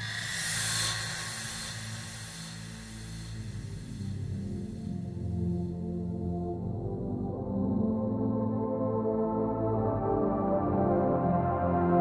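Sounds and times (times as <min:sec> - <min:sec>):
white-noise swoosh effect: 0:00.0 - 0:04.2
low sustained synth pad: 0:00.0 - 0:12.0.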